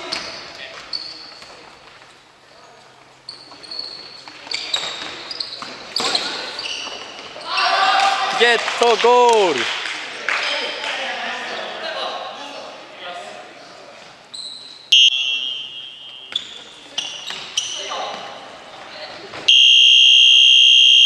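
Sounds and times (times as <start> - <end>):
players shouting: 7.4 - 9.7.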